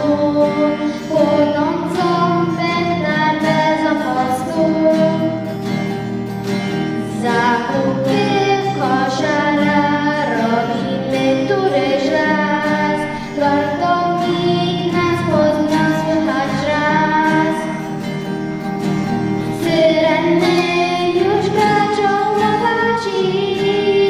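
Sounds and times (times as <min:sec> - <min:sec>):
girl singing into microphone: 0:00.0 - 0:05.6, 0:07.0 - 0:18.1, 0:19.4 - 0:24.0
acoustic guitar: 0:00.0 - 0:24.0.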